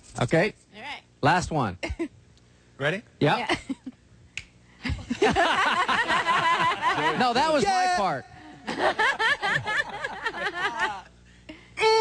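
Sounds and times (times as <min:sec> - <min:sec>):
finger snap: 0:04.3 - 0:04.6
men laughing: 0:04.8 - 0:07.7, 0:08.3 - 0:11.2
men talking: 0:06.7 - 0:08.6.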